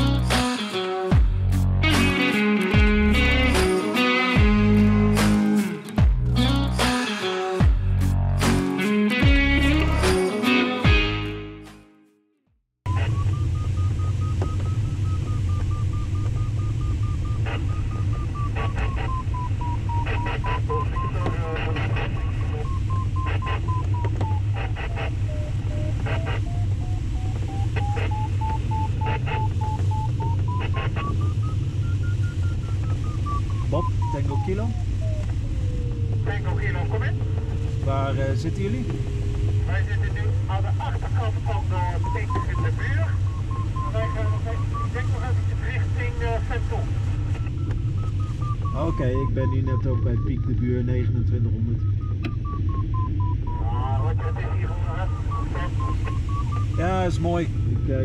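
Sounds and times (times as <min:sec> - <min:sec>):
variometer tone sliding in pitch: 0:12.9 - 0:40.5, 0:47.1 - 0:58.0.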